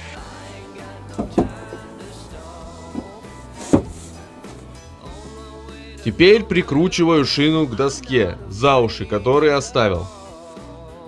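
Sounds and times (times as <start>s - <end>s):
background music: 0.0s - 11.0s
dull knocks on wood: 1.1s - 1.9s, 2.9s - 4.6s.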